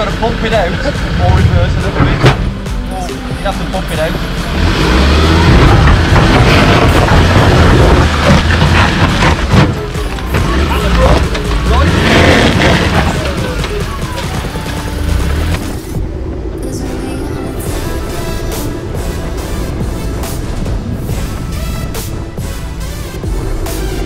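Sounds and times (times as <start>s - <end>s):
music: 0.0s - 24.0s
pickup truck engine working: 0.0s - 24.0s.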